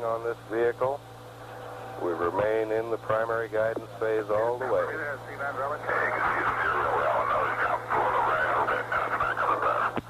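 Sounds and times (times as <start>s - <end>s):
steady low hum: 0.0s - 10.0s
muffled voice over radio static: 2.0s - 10.0s.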